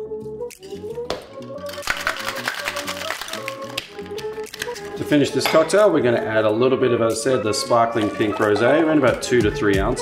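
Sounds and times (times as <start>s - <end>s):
background music: 0.0s - 10.0s
ice rattling in cocktail shaker: 1.7s - 3.8s.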